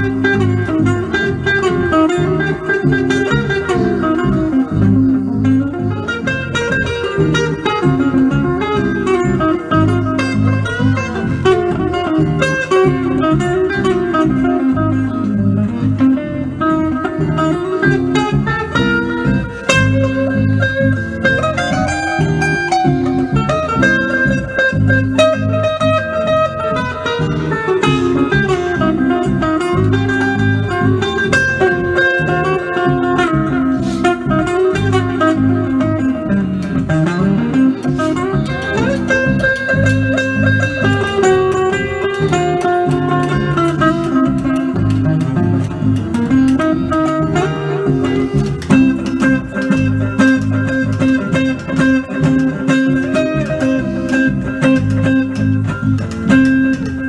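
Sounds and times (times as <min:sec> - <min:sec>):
electric guitar playing jazz: 0:00.0 - 0:57.0.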